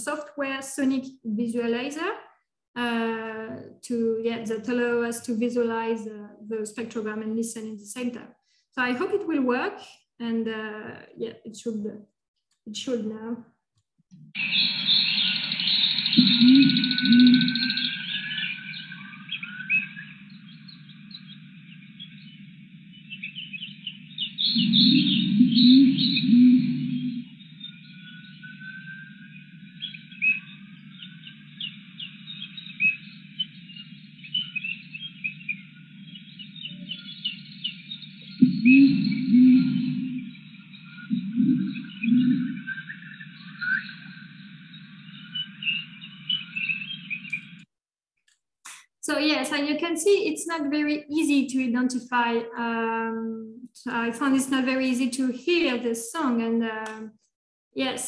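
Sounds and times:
chorus of birds and animals chirping: 14.4s - 47.6s
gibbon call pulses: 16.2s - 17.9s, 24.6s - 27.3s, 38.4s - 40.3s.

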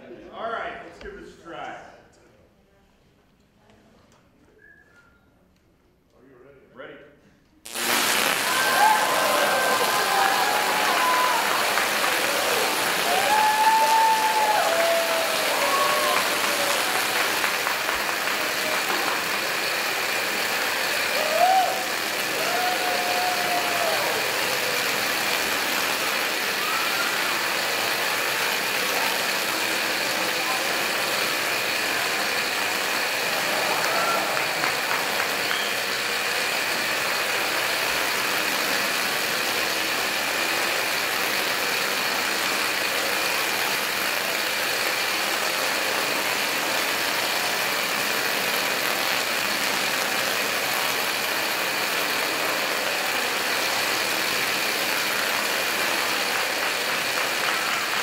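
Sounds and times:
tesla coil sparks buzzing: 7.6s - 58.0s.

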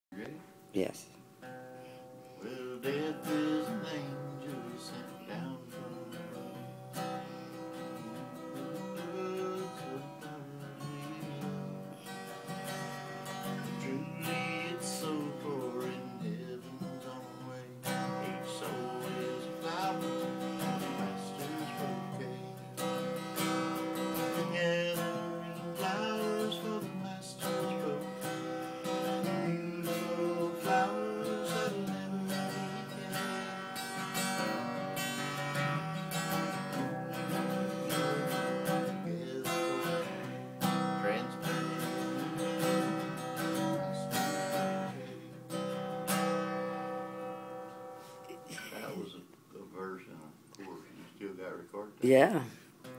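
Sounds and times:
acoustic guitar strumming: 1.2s - 52.9s.

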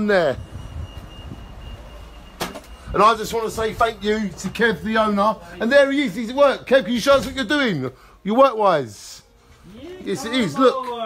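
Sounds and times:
street traffic rumble: 0.0s - 5.7s.

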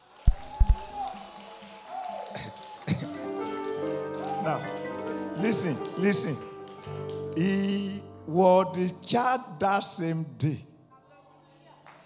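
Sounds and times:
congregation clapping: 0.0s - 8.9s, 11.8s - 12.0s
church keyboard sustained note: 3.1s - 10.2s.

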